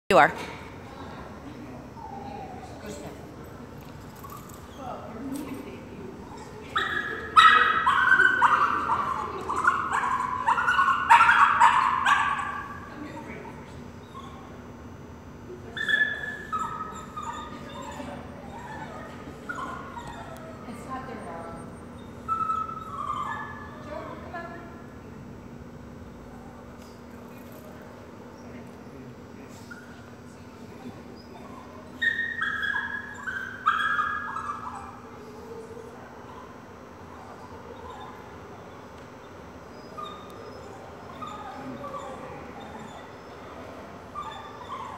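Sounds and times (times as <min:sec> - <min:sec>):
dog whining and yipping: 0:02.0 - 0:02.9, 0:06.3 - 0:12.6, 0:15.8 - 0:20.6, 0:22.0 - 0:24.1, 0:31.1 - 0:35.1, 0:39.7 - 0:44.9.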